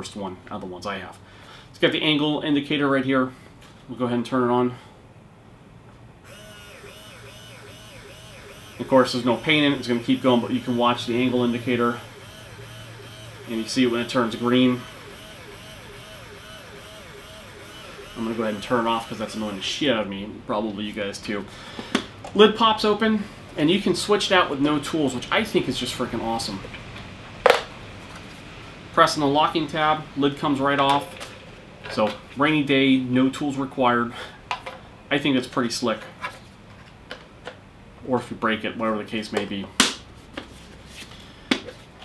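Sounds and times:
motor whine wavering in pitch: 6.2 - 19.9.

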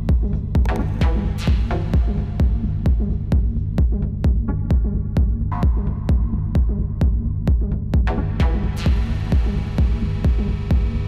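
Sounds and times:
kick drum: 0.0 - 11.0.

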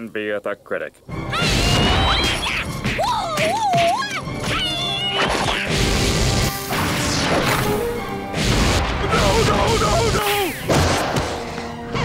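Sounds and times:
dramatic background music: 1.1 - 12.0
cartoon crash and smack effects: 5.2 - 7.6, 10.6 - 11.4.

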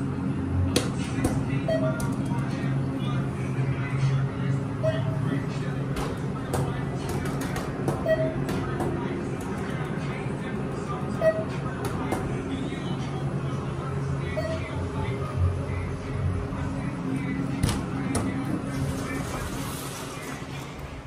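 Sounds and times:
elevator low hum: 0.0 - 21.0.

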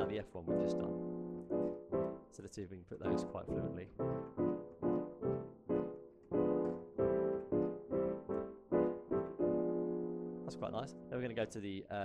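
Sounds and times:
digital piano playing block chords: 0.0 - 11.9.

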